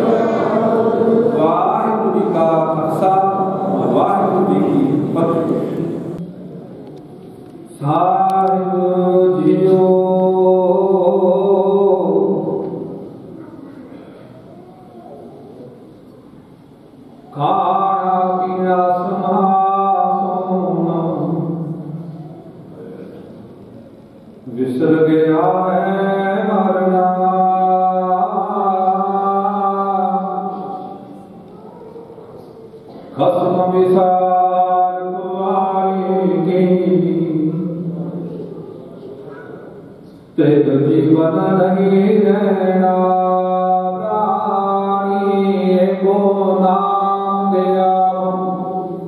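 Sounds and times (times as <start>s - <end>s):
man chanting into a microphone: 0.0s - 6.2s, 7.7s - 13.4s, 17.2s - 23.4s, 24.4s - 31.4s, 32.9s - 49.0s.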